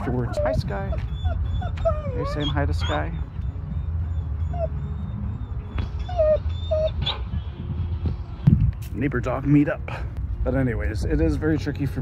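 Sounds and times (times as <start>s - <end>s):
dog whimpering: 0.0s - 7.3s.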